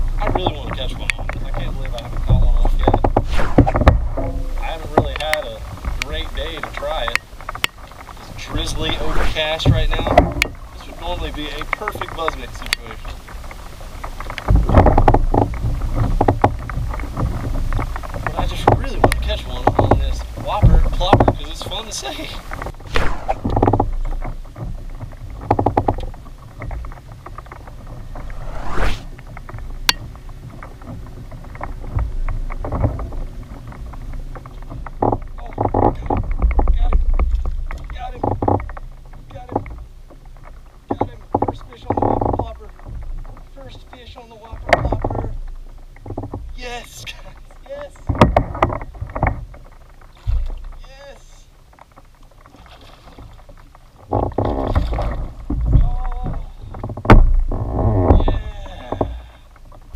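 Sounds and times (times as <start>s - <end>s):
water sounds: 0.0s - 59.9s.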